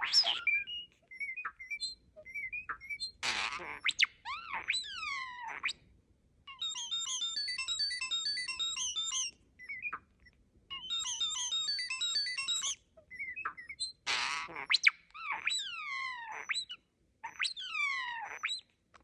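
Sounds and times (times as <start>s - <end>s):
bird whistled glides: 0.0s - 3.0s
starling chirping: 0.0s - 5.7s, 6.5s - 10.1s, 10.7s - 14.0s.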